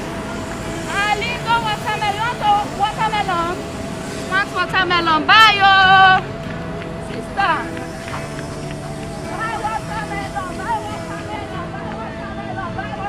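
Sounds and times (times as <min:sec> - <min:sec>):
street traffic hum: 0:00.0 - 0:13.0.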